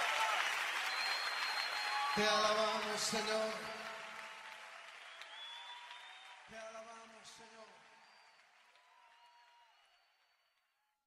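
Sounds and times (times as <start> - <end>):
faint applause: 0.0 - 10.9.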